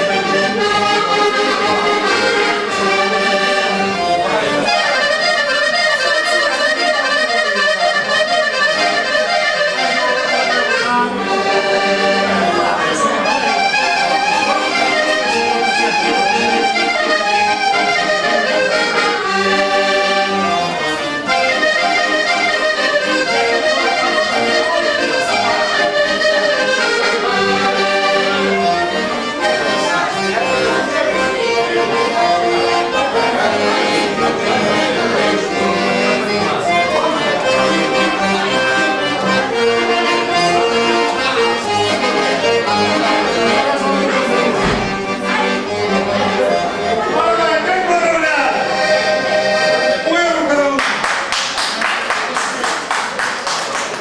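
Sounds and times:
button accordions playing a tune: 0:00.0 - 0:51.7.

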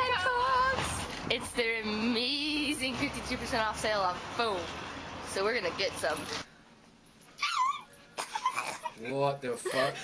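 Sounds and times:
woman squealing: 0:07.4 - 0:08.9.

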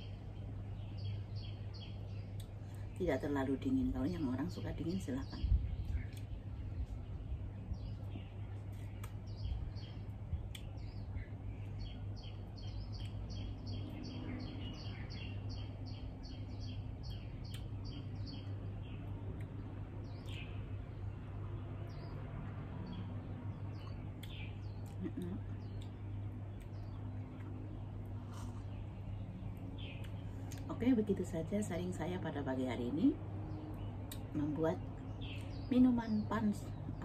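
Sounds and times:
small birds chirping: 0:00.0 - 0:37.0
steady low hum: 0:00.0 - 0:37.0.

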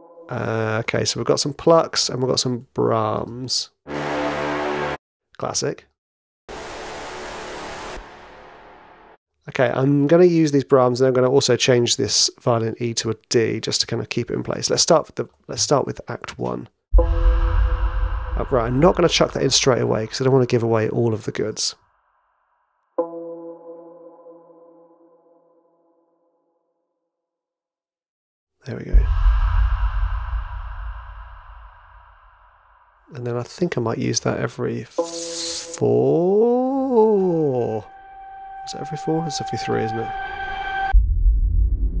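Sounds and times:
high ringing tone: 0:17.0 - 0:19.4, 0:35.0 - 0:36.0, 0:37.3 - 0:41.0
deep boom with low rumble: 0:17.0 - 0:20.1, 0:28.9 - 0:33.0, 0:40.9 - 0:42.0.

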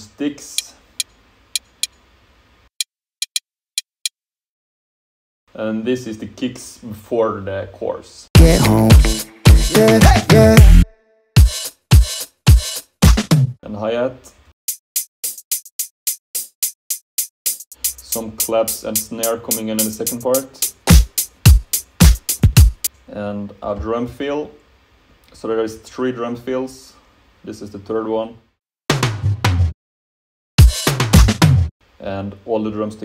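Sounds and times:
drum-stick clicks: 0:00.5 - 0:02.0, 0:02.8 - 0:04.2
electronic hi-hat hits: 0:08.4 - 0:10.8, 0:11.4 - 0:13.3, 0:14.7 - 0:22.9, 0:30.6 - 0:31.5.

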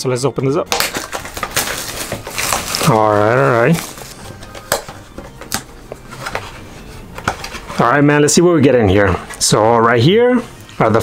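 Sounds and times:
cardboard and plastic rustling: 0:00.7 - 0:11.0.

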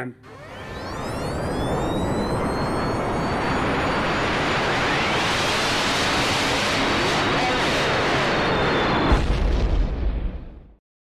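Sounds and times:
gliding whistle-like tones: 0:00.3 - 0:09.2.

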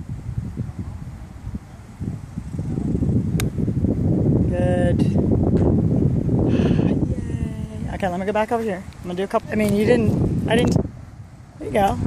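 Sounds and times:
golf club striking ball: 0:03.3 - 0:03.6.

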